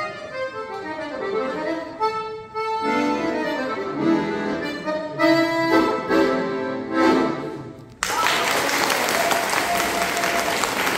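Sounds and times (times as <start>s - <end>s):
audience applause: 8.0s - 10.9s.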